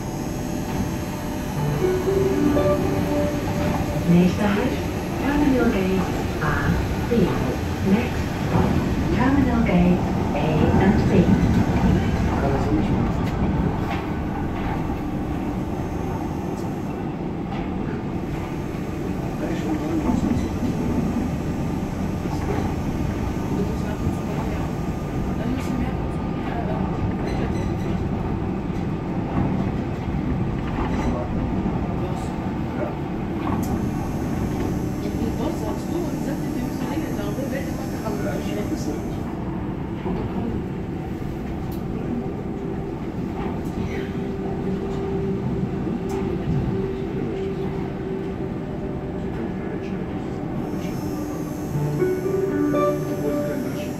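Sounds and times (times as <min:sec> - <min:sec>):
suspended train rolling: 0:00.0 - 0:53.9.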